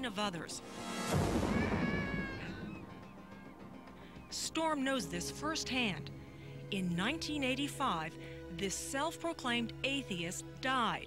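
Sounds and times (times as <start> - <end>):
background music: 0.0 - 11.0
drawn-out wailing cry: 1.5 - 4.2.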